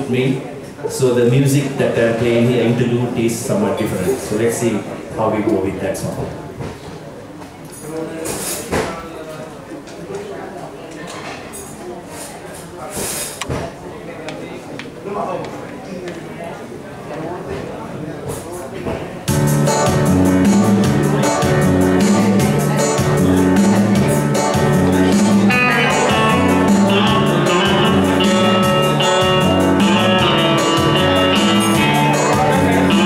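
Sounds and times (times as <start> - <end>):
murmur of voices: 0.0 - 33.0
electronic keyboard music: 19.3 - 33.0.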